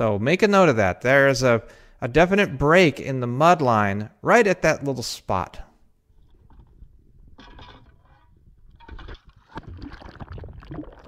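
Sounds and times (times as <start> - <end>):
water sloshing against boat hull: 6.1 - 10.7.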